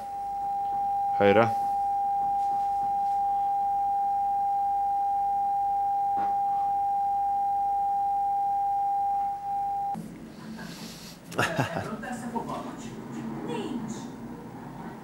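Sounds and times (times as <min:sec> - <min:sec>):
steady sine test tone: 0:00.0 - 0:10.0.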